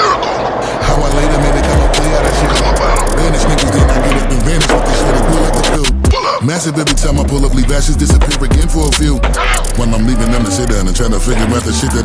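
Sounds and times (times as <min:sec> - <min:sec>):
skateboard wheels rolling on concrete: 0:00.2 - 0:05.9
skateboard clicks: 0:00.8 - 0:06.0, 0:06.9 - 0:12.0
hip-hop beat: 0:00.8 - 0:12.0.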